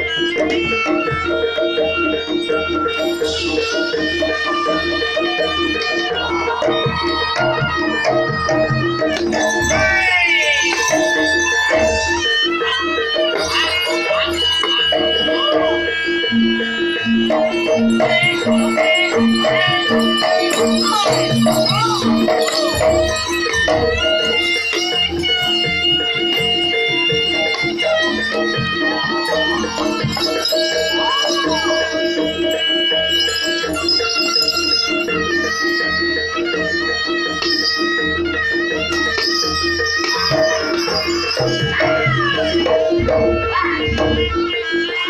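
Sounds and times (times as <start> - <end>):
gamelan melody: 0.0 - 45.0
pitched percussion strokes: 2.3 - 44.5.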